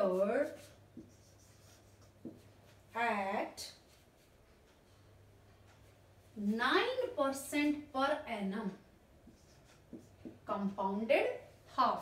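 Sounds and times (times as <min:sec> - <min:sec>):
marker scratching on whiteboard: 0:00.0 - 0:04.5, 0:09.2 - 0:10.8.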